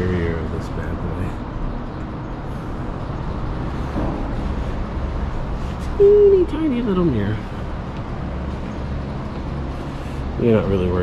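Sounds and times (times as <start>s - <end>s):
low rumbling background noise: 0.0s - 11.0s.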